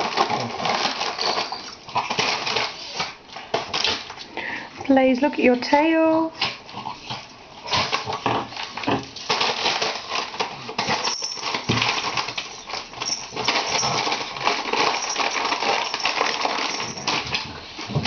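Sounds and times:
crisp packet crinkling: 0.0s - 4.3s, 7.6s - 18.0s.

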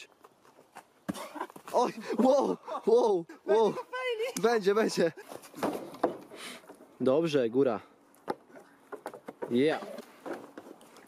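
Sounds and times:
man laughing breathily: 1.2s - 3.8s.

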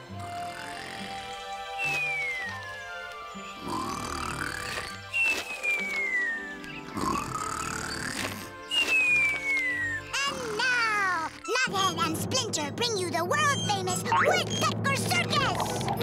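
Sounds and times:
light background music: 0.0s - 16.0s
cartoon snoring with whistle: 0.2s - 2.5s, 3.6s - 8.5s.

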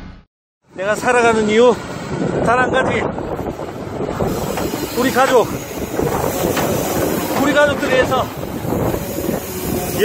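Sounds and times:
wind blowing across microphone: 0.7s - 10.0s.

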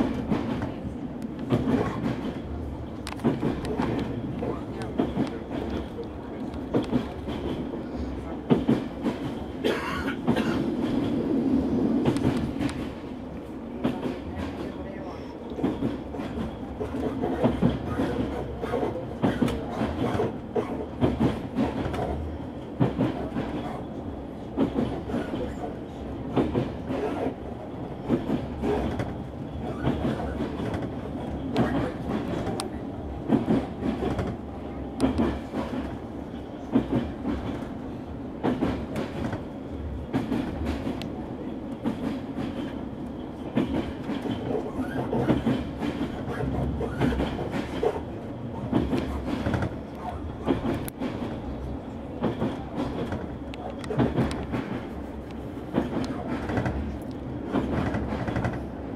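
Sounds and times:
train rumbling: 0.0s - 58.9s.

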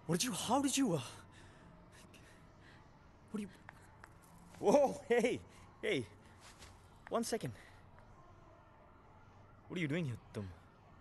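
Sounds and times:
soft breathing: 1.0s - 4.0s.

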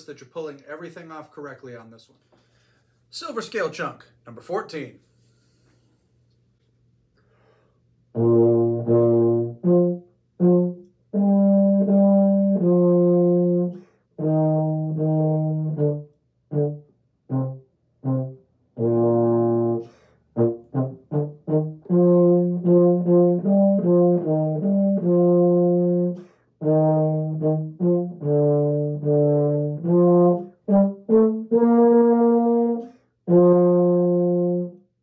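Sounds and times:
solo euphonium playing: 8.1s - 35.0s.

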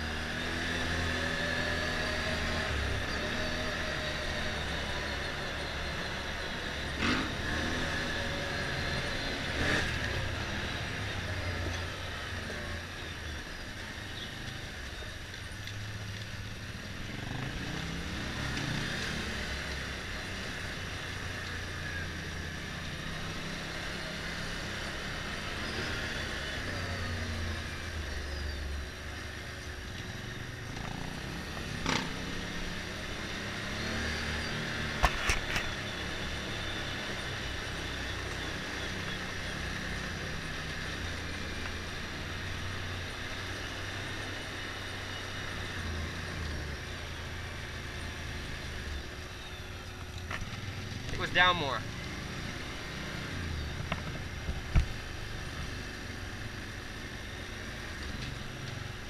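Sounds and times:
motorcycle engine running: 0.0s - 59.0s
tyres rumbling on cobblestones: 26.4s - 59.0s.

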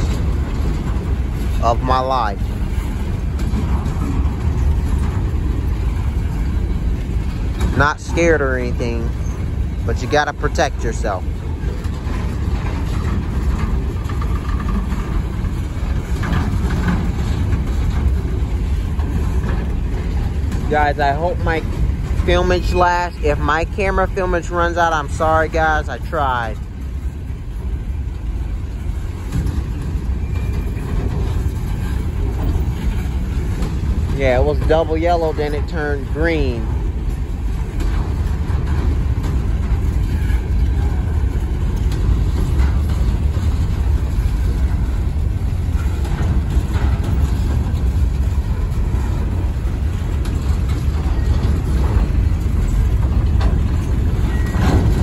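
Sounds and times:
freight train wheels rumbling on rail: 0.0s - 55.0s.

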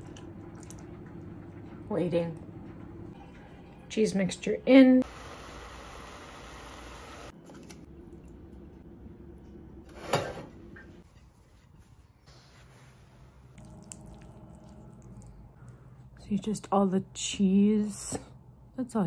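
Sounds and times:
kitchen handling sounds: 9.9s - 11.3s.

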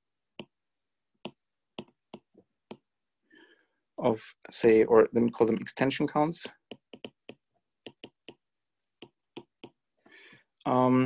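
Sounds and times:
stylus tapping on glass screen: 1.2s - 2.9s, 6.6s - 9.9s.

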